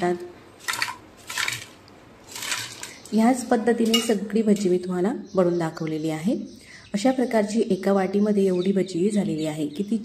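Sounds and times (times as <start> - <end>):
fried snacks rattling onto plate: 0.6 - 3.2.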